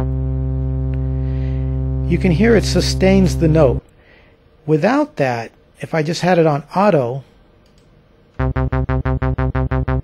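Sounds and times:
low synth bass note: 0.0 - 3.8, 8.4 - 10.0.

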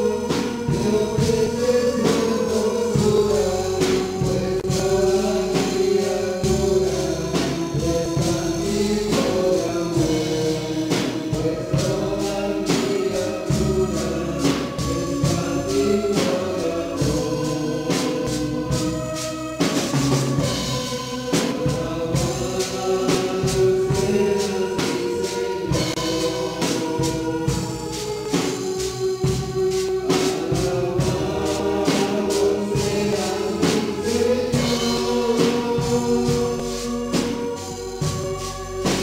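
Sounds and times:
electric bass: 0.0 - 24.2
amplified band playing: 0.0 - 39.0
drum kit and cymbal hits: 0.0 - 39.0
people singing through microphones: 0.0 - 39.0.

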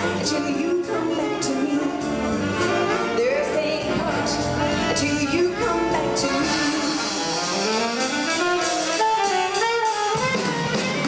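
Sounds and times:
drum kit and cymbals: 0.0 - 11.0
saxophones and brass ensemble: 0.0 - 11.0.

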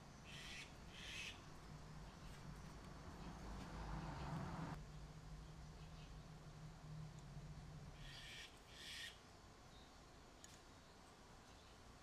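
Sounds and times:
faint bird calls: 0.2 - 1.5, 8.0 - 9.2.

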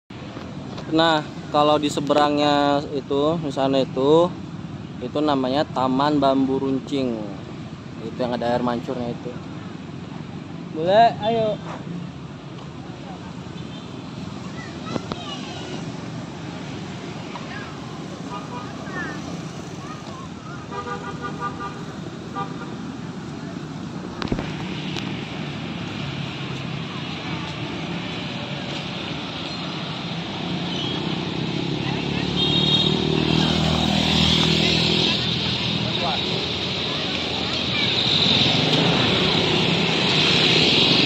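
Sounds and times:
motorbike and car traffic passing: 0.1 - 41.0
vehicle horn: 32.4 - 33.0.

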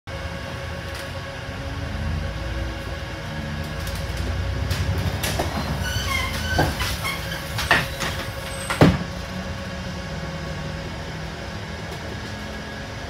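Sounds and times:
bus engine humming: 0.1 - 13.0.

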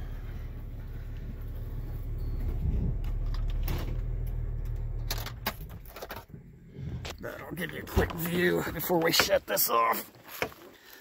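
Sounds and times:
car engine rumbling: 0.0 - 10.7.

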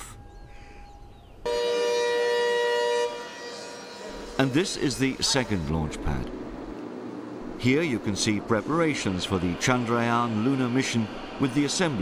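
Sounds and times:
siren steady tone: 1.5 - 5.8.

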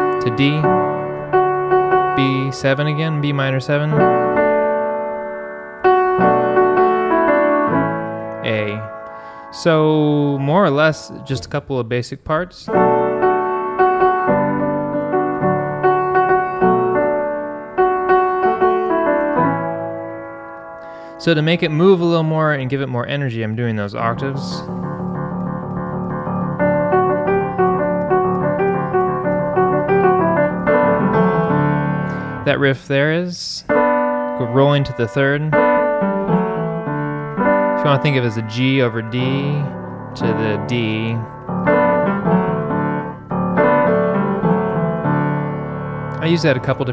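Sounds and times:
piano chords over bass line: 0.0 - 11.9, 12.6 - 46.9.

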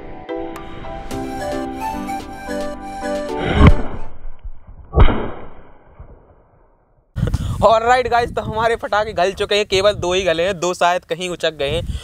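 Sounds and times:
background music: 0.0 - 4.1.

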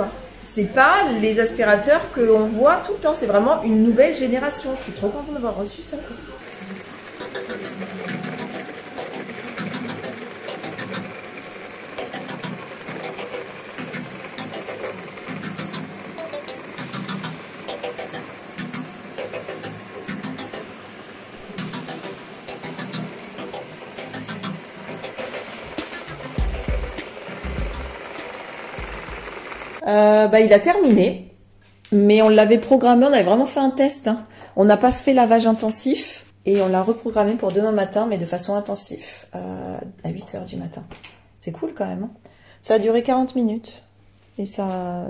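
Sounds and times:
robot vacuum motor whirring: 6.4 - 29.8.

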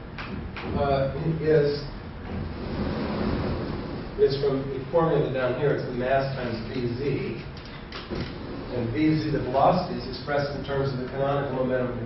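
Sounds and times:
chalkboard panels sliding on tracks: 2.3 - 4.0, 8.1 - 8.9.

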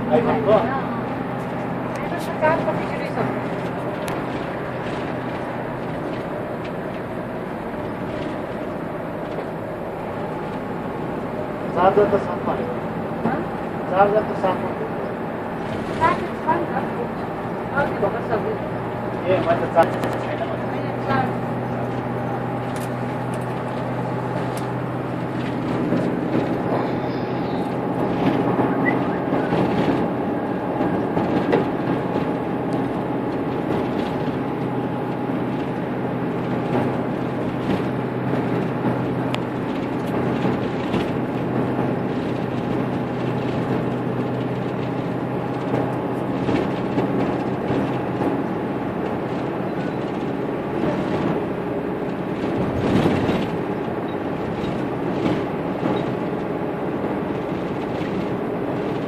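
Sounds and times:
engine hum: 0.0 - 59.0
road and tyre noise: 0.0 - 59.0.

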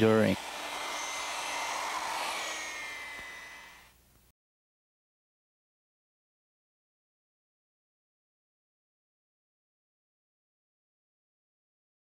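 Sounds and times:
polishing pad hissing on stone: 0.0 - 3.9
polisher motor whine: 0.0 - 4.0.

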